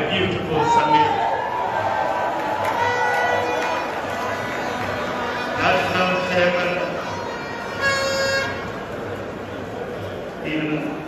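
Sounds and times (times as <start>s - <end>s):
horn toot: 2.7s - 8.9s.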